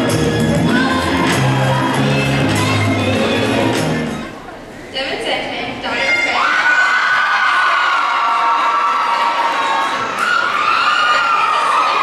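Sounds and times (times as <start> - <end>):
crowd cheering and screaming: 5.9 - 12.0
long high-pitched screams: 6.0 - 12.0.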